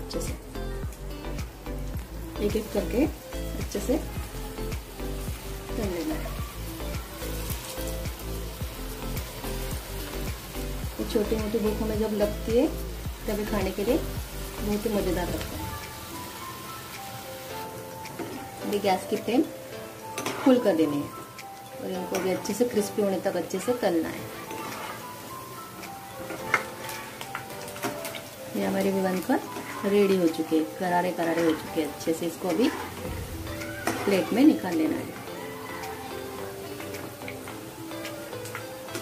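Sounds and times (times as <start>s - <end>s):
background music with beat: 0.0s - 18.6s, 25.0s - 26.2s, 33.0s - 39.0s
food sizzling in hot oil: 0.0s - 39.0s.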